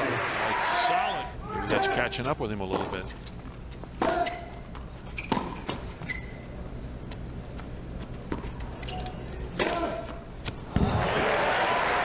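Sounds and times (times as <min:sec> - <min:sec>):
shoe squeaks: 0:01.6 - 0:10.6.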